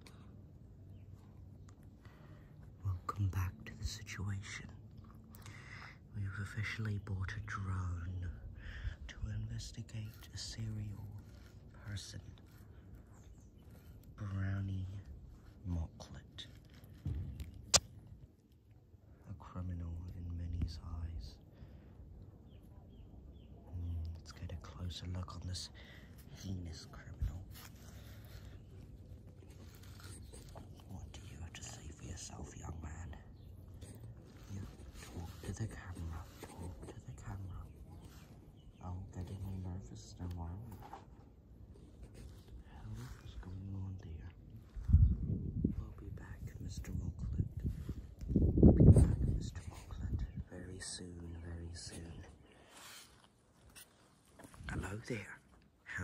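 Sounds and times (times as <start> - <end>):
person whispering: 2.6 - 16.8, 19.2 - 21.5, 23.6 - 41.0, 42.1 - 53.2, 54.4 - 56.0.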